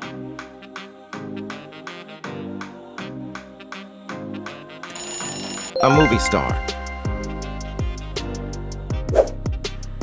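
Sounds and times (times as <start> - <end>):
background music with steady beat: 0.0 - 5.0, 5.6 - 10.0
electronic ringing bell: 4.9 - 7.7
person speaking: 5.8 - 7.0.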